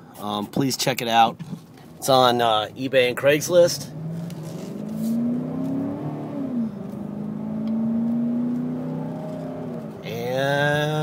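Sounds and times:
car engine accelerating: 0:01.8 - 0:11.0.

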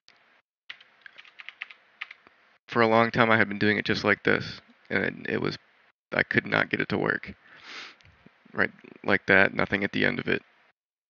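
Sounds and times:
computer keyboard typing: 0:00.7 - 0:02.2.

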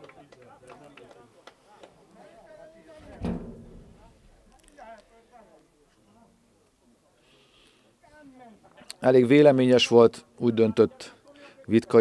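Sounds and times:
dull thump: 0:03.0 - 0:04.6.

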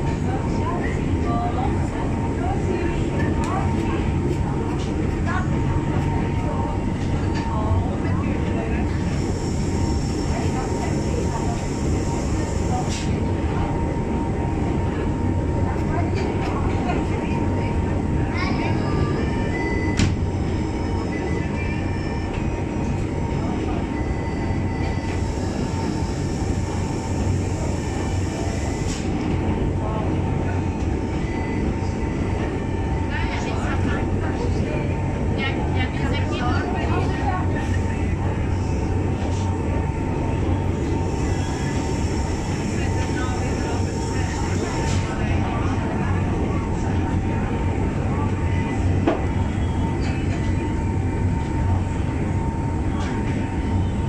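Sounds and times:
railway car running rumble: 0:00.0 - 0:54.0.

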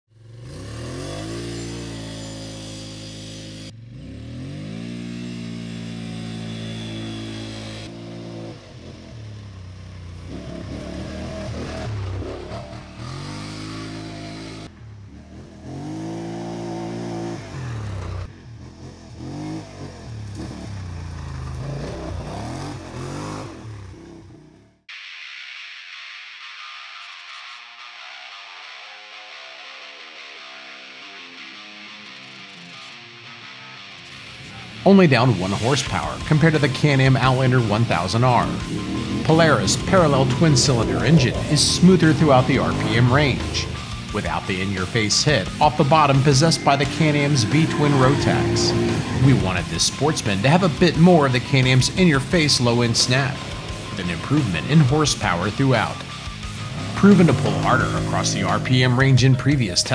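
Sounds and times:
atv engine revving: 0:00.1 - 0:24.9, 0:34.1 - 0:59.9
guitar music: 0:28.2 - 0:59.9.

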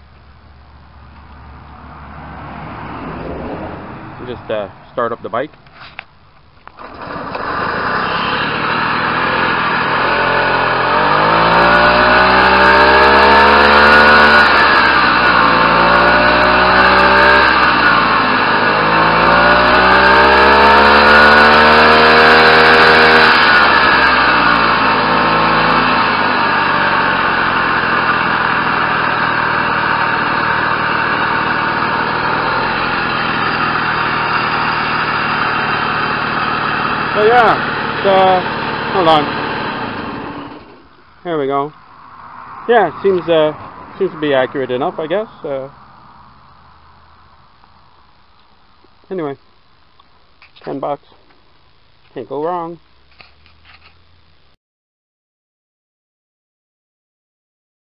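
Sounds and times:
moped engine idling and revving: 0:00.0 - 0:54.6.

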